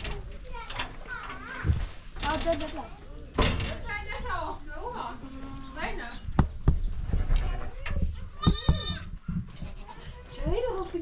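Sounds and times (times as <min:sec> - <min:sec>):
goats bleating: 0:08.3 - 0:09.2.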